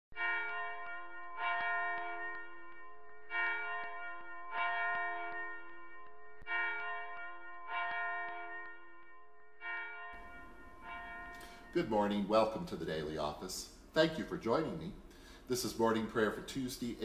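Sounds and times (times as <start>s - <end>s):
church bell ringing: 0.1s - 15.4s.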